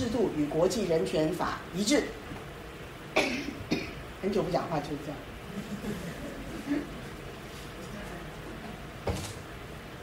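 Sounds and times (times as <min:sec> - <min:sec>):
woman coughing: 0:03.2 - 0:04.0.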